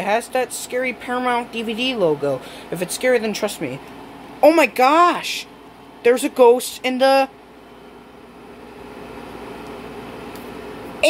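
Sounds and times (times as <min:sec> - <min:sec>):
window air conditioner humming: 0:00.0 - 0:11.0.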